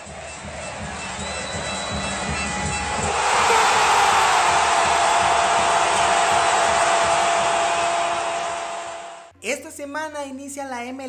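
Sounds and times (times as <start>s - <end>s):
stadium crowd noise: 0.0s - 9.3s.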